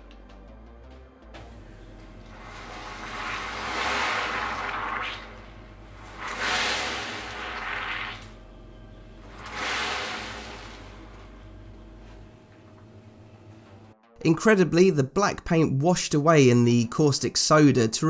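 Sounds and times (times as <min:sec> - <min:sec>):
water pouring and splashing: 0:01.4 - 0:08.4, 0:09.2 - 0:11.4.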